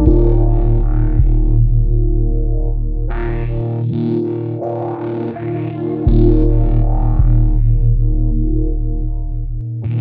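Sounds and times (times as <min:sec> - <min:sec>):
deep bass: 0:00.0 - 0:10.0
distorted electric guitar melody: 0:00.0 - 0:10.0.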